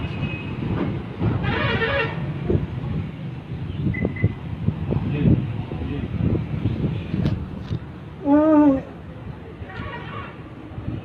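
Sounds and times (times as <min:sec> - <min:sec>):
vehicle horn: 0:01.4 - 0:02.2.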